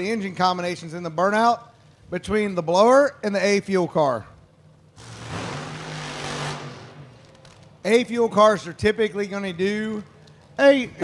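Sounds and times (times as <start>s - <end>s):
distant dragster engine revving: 5.0s - 7.7s.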